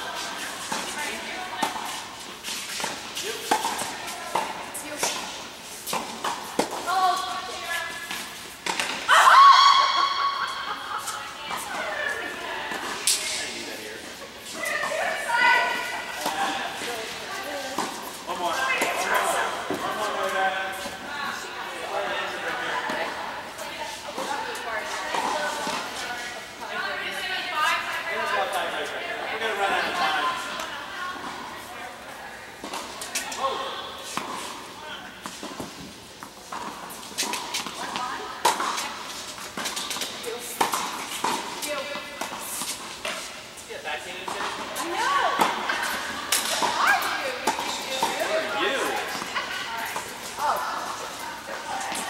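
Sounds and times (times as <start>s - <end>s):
voices talking in a hall: 0.0s - 52.0s
tennis balls struck by rackets: 0.2s - 9.1s, 34.1s - 43.4s, 44.2s - 52.0s.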